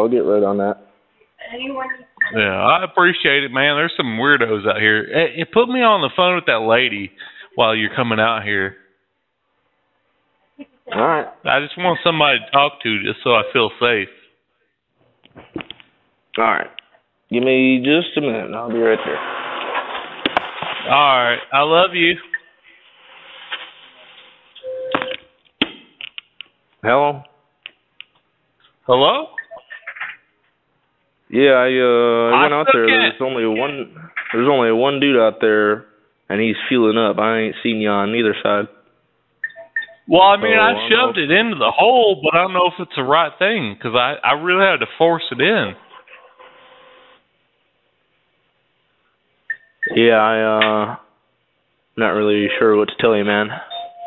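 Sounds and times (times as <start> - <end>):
telephone line beep: 24.6 - 25.3, 53.7 - 54.0
low line hiss: 51.9 - 53.6.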